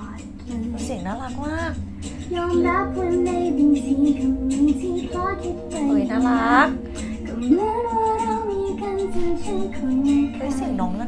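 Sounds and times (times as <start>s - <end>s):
young woman singing: 0.0s - 11.0s.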